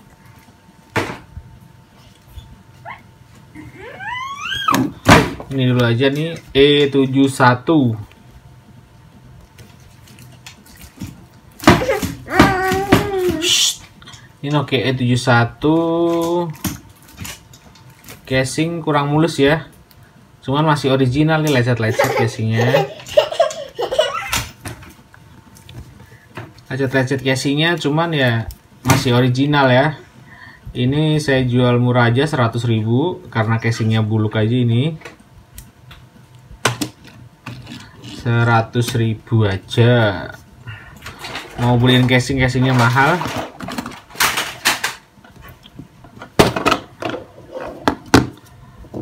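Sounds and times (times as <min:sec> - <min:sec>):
high-pitched rising cry: 0:03.6 - 0:04.9.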